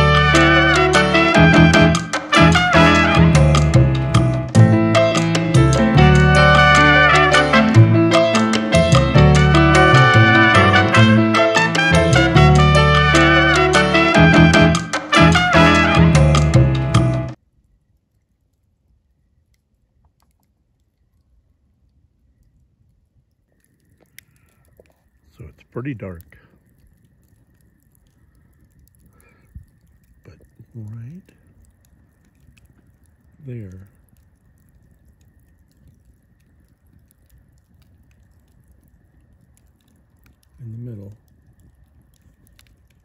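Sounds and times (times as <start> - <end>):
low rumble: 0.0 - 17.4
campfire crackling: 0.0 - 43.0
faint clicks: 17.5 - 43.0.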